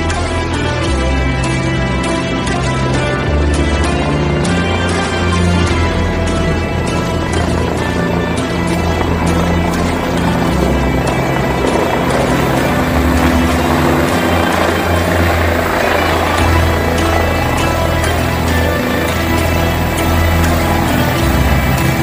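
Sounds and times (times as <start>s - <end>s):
background music with steady beat: 0.0s - 22.0s
helicopter rotor and engine: 0.0s - 22.0s.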